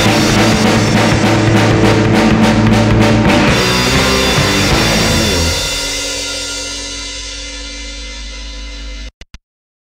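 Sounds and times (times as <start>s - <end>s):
distorted guitar and bass chord: 0.0s - 9.1s.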